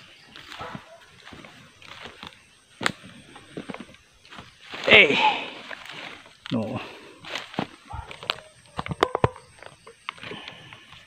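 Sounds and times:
footsteps on wet muddy ground: 0:00.0 - 0:08.5.

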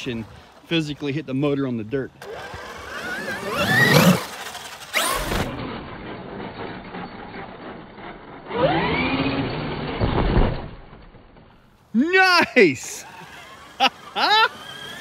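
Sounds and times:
tires churning sand: 0:00.0 - 0:10.1, 0:12.0 - 0:15.0
electric motor whining: 0:02.2 - 0:05.6, 0:13.0 - 0:15.0.

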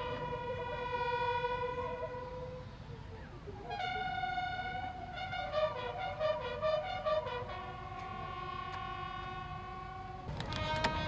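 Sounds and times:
brass band playing: 0:00.0 - 0:02.6, 0:03.6 - 0:11.0.

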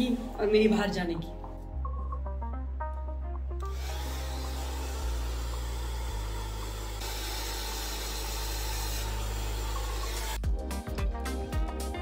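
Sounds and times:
hair dryer running: 0:03.6 - 0:10.4.

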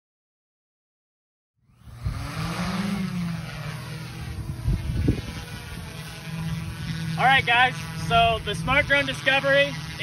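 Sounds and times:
drone propeller hum: 0:01.6 - 0:10.0.

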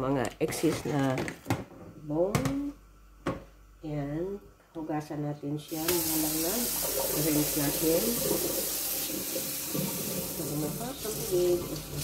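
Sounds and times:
tap running into metal bowl: 0:06.8 - 0:12.0.

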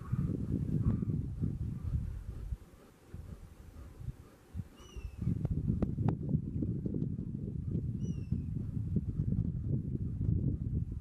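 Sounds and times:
bird chirps: 0:04.8 - 0:05.3, 0:08.0 - 0:08.4
low rumble: 0:05.1 - 0:11.0.

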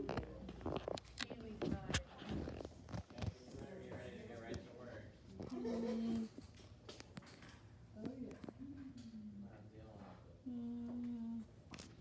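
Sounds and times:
woman humming: 0:10.4 - 0:11.5.

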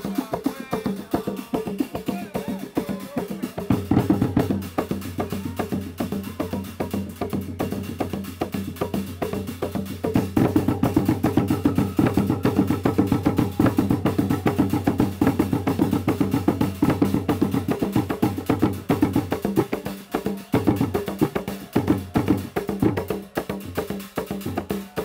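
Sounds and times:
fast dense drumming: 0:00.0 - 0:25.0.

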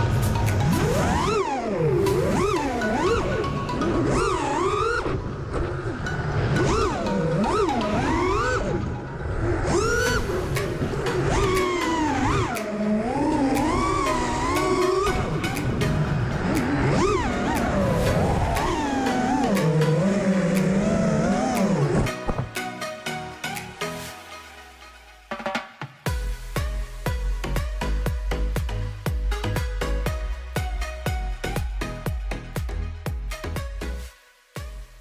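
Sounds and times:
quadcopter motors whining: 0:00.0 - 0:22.3.

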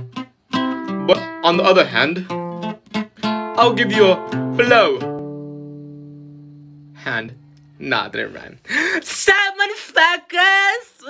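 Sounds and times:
guitar chord ringing: 0:00.0 - 0:07.9.

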